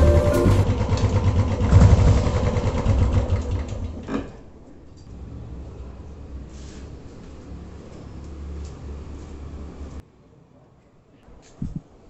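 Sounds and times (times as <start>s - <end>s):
motorcycle engine running: 0.0s - 4.0s.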